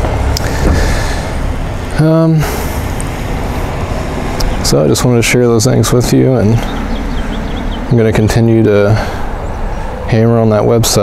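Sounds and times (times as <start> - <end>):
car driving past: 0.0 - 4.7.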